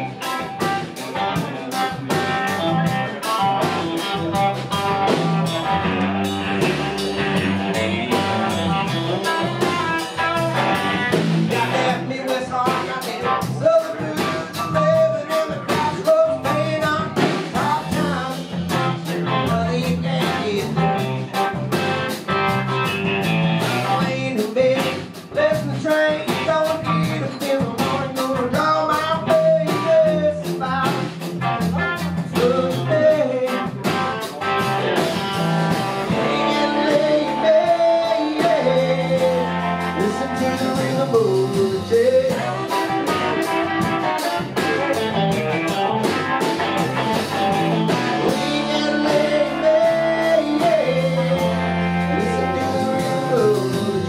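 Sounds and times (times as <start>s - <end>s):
bass guitar: 0.0s - 54.0s
drum kit: 0.0s - 54.0s
electric guitar: 0.0s - 54.0s
man singing: 7.6s - 21.6s, 23.8s - 34.6s, 35.8s - 45.3s, 48.0s - 54.0s.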